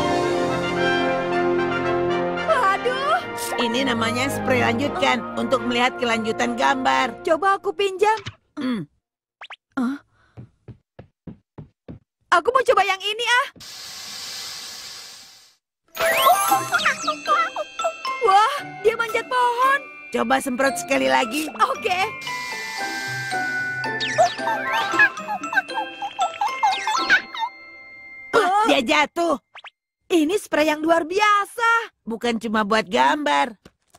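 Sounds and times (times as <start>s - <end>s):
cartoon footsteps: 9.4s - 13.9s
tinkling children's music: 15.9s - 28.9s
cartoon squeaks and whistles: 16.0s - 17.5s, 23.8s - 25.1s
cartoon sweep effect: 16.0s - 17.6s.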